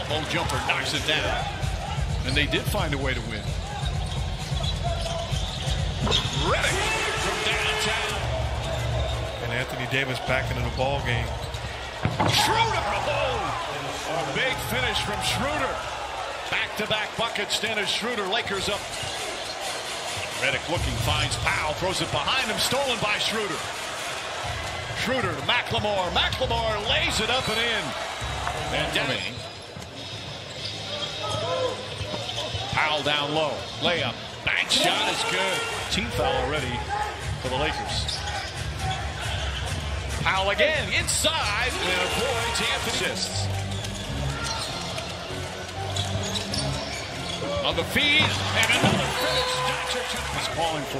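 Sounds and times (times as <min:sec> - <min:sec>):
arena background music: 0:00.0 - 0:30.0, 0:31.4 - 0:50.9.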